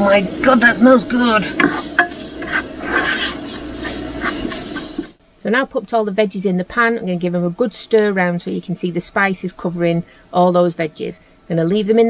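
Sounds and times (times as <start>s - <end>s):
onions sizzling in a frying pan: 0.0s - 5.2s
plastic spatula scraping a pan: 1.4s - 5.2s.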